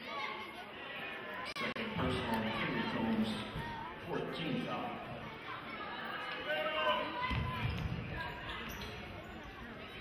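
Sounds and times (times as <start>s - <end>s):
voices echoing in a gymnasium: 0.0s - 10.0s.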